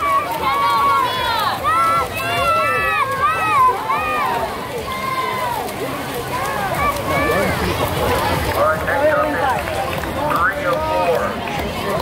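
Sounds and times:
spectators shouting and cheering: 0.0s - 12.0s.

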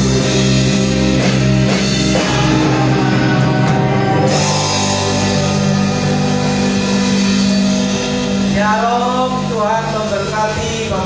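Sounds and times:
electric bass and guitar chord: 0.0s - 11.0s
person's voice: 8.4s - 11.0s.

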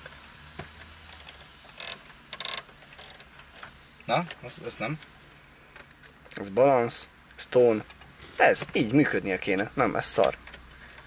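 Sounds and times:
rapid ratcheting ticks: 1.1s - 3.3s.

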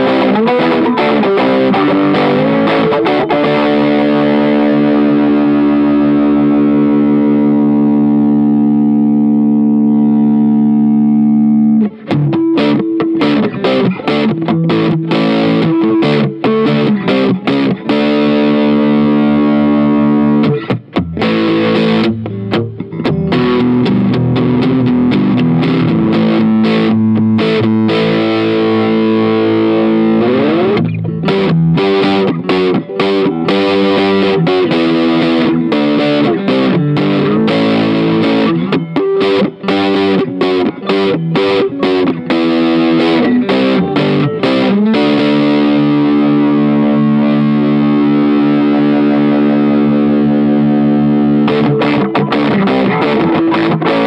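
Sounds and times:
distorted electric guitar: 0.0s - 54.0s.

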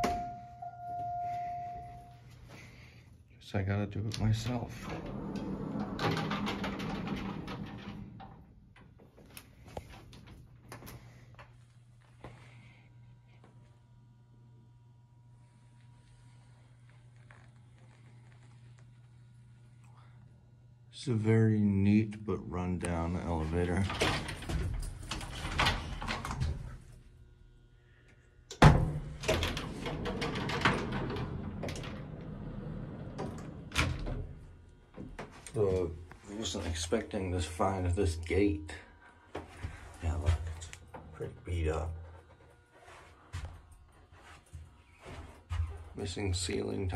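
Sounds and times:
metal elevator gate rattling: 4.8s - 8.4s, 28.6s - 34.4s.

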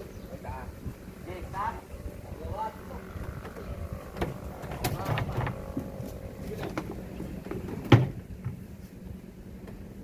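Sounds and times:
sharp wood knocks: 3.4s - 5.9s
wooden cabinet being shifted: 3.4s - 8.6s.

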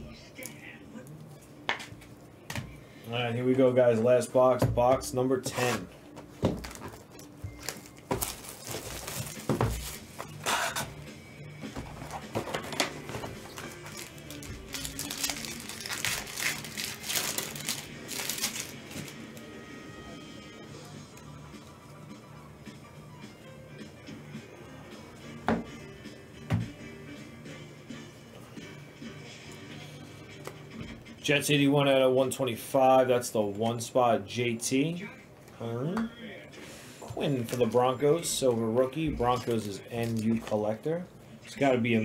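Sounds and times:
background music: 0.0s - 42.0s
shrink-wrap crinkling and tearing: 7.6s - 10.6s, 13.4s - 19.4s.

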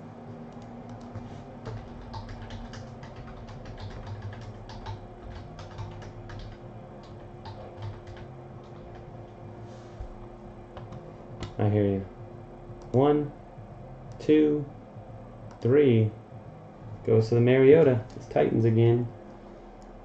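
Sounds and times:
typing on computer keyboard: 0.6s - 9.1s.

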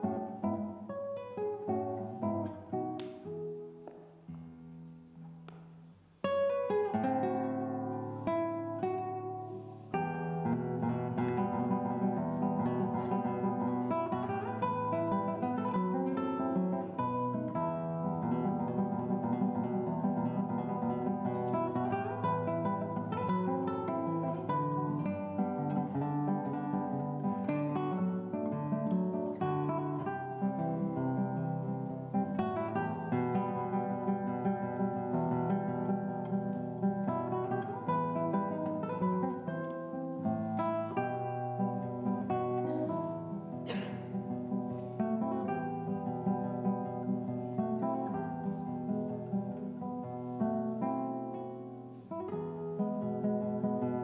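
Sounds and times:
fingerstyle classical guitar: 0.0s - 54.0s.

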